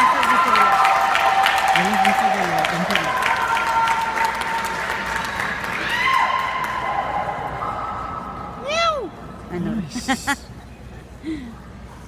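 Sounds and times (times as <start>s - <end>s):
audience clapping and cheering: 0.0s - 7.4s.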